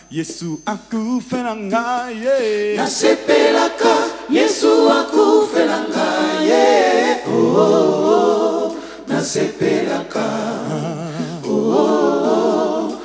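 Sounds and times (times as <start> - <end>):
man singing lead: 0.0 - 3.0, 10.6 - 11.6
voices singing in harmony: 0.0 - 13.0.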